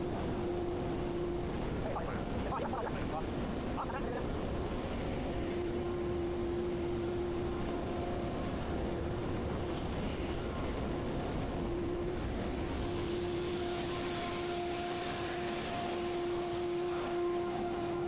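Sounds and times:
humming tone: 0.0s - 18.0s
industrial machinery drone: 0.0s - 18.0s.

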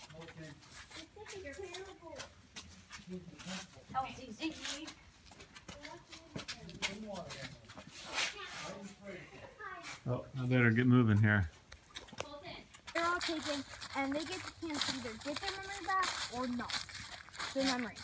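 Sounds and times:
taps and scuffs: 4.4s - 8.4s
people talking indistinctly: 5.6s - 18.0s.

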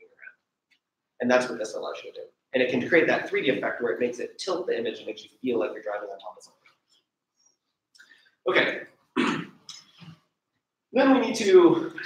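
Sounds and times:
man clearing his throat: 9.2s - 9.8s.

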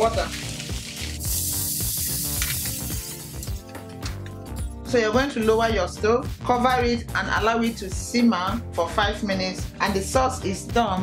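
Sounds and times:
water hissing in hot frying pan: 0.0s - 3.6s
background music: 0.0s - 11.0s.

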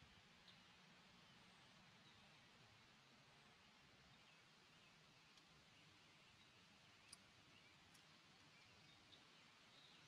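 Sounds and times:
faint outdoor ambience: 0.0s - 10.0s
faint click: 5.3s - 5.5s, 7.0s - 7.3s.

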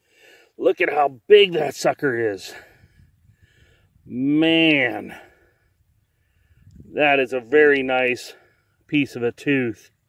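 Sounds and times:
man speaking: 0.6s - 2.6s, 4.1s - 5.2s, 6.9s - 9.8s.

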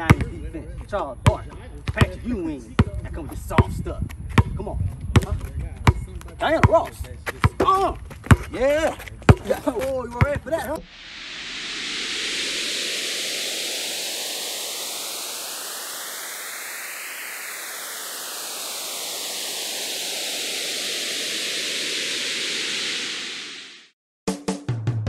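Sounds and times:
whooshing white noise sweep: 10.8s - 24.0s.

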